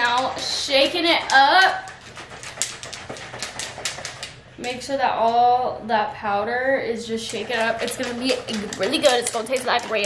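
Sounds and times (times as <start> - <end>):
liquid sloshing in shaker bottle: 0.0 - 4.8, 7.2 - 10.0.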